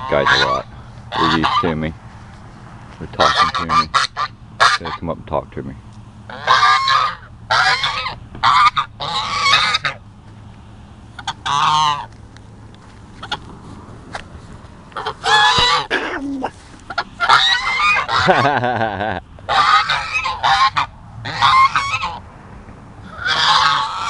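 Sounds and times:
geese honking: 0.0 - 5.2, 6.2 - 10.2, 11.1 - 12.2, 13.1 - 22.2, 23.0 - 24.0.

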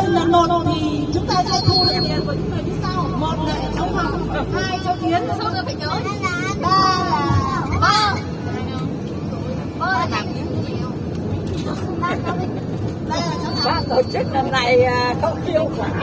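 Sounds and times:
engine hum and road noise: 0.0 - 16.0
people talking and calling out: 0.0 - 16.0.

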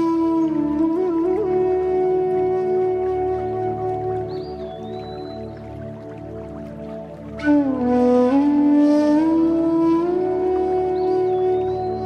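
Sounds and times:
bamboo flute long note: 0.0 - 12.0.

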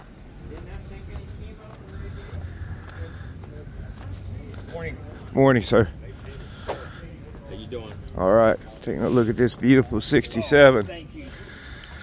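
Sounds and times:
faint voices talking: 0.0 - 12.0
low outdoor rumble: 0.0 - 12.0.

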